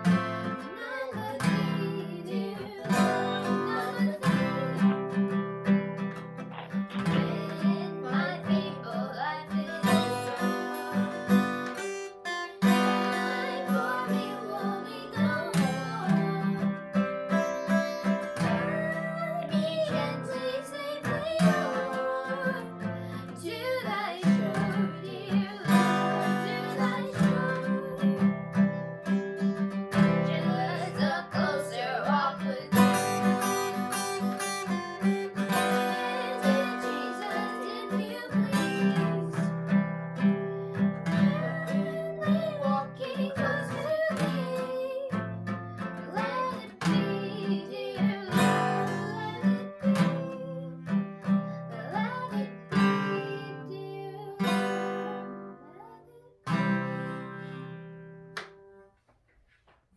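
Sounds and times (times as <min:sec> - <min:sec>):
girl singing slow song: 0:00.0 - 0:05.4, 0:06.7 - 0:12.0, 0:12.6 - 0:57.6
acoustic guitar strumming: 0:00.0 - 0:58.9.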